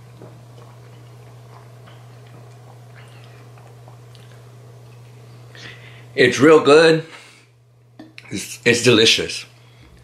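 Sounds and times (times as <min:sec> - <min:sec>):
person gulping: 0:00.0 - 0:04.6
steady low hum: 0:00.0 - 0:10.0.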